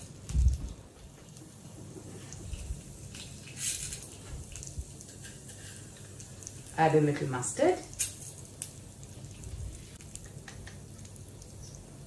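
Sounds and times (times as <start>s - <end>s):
lentils crackling frying: 0.0s - 12.0s.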